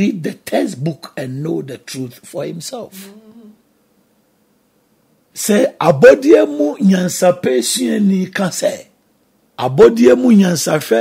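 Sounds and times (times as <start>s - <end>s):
man humming: 2.9s - 3.6s.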